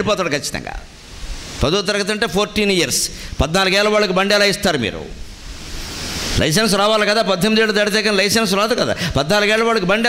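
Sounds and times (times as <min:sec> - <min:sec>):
man speaking into a microphone: 0:00.0 - 0:00.9, 0:01.6 - 0:05.2, 0:06.4 - 0:10.0
soft hiss: 0:00.0 - 0:10.0.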